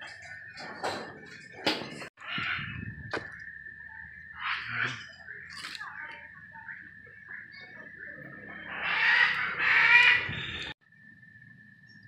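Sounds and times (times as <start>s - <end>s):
bird calling harshly: 8.6s - 10.8s.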